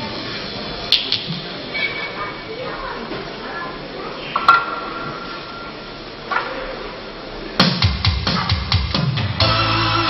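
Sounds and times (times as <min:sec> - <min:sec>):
drum kit: 0:07.6 - 0:10.0.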